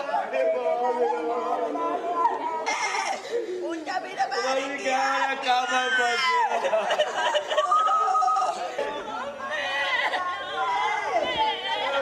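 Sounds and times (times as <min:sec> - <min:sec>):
mourners wailing and sobbing: 0:00.0 - 0:12.0.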